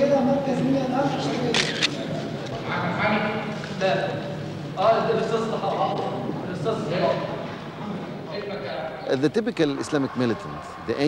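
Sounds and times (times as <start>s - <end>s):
man speaking: 8.3s - 11.0s.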